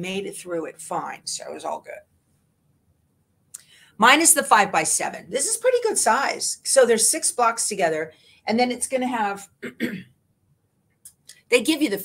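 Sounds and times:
woman speaking: 0:00.0 - 0:02.0, 0:04.0 - 0:09.5, 0:11.3 - 0:12.0.

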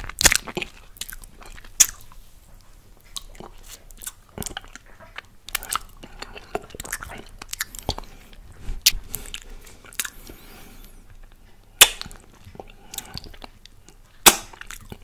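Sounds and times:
wet mouth licking and sucking: 0:00.0 - 0:02.2, 0:03.0 - 0:10.5, 0:11.1 - 0:15.0.

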